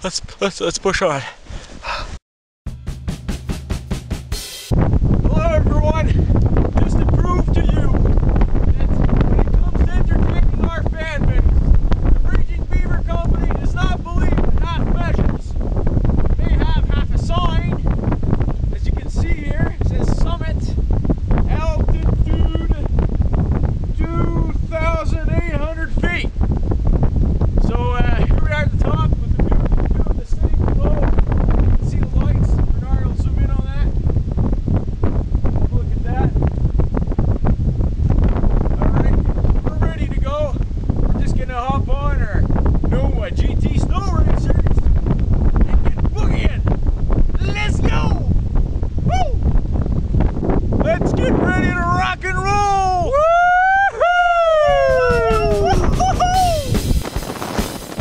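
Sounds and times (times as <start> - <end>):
man talking: 0.0 - 1.4, 5.3 - 6.2, 6.8 - 8.0, 8.8 - 11.5, 12.2 - 15.5, 16.4 - 17.8, 21.5 - 22.9, 24.0 - 26.3, 41.2 - 44.7, 45.7 - 46.6, 47.4 - 48.3, 50.8 - 53.1, 54.7 - 56.7
wind buffeting microphone: 4.7 - 58.0.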